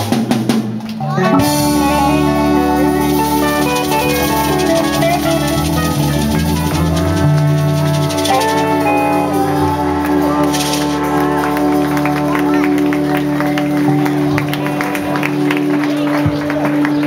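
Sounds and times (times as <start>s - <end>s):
drum kit: 0.0s - 17.0s
electric guitar: 0.0s - 17.0s
keyboard: 0.0s - 17.0s
steady bass: 0.0s - 17.0s
trombone: 1.2s - 17.0s
trumpet: 1.2s - 17.0s.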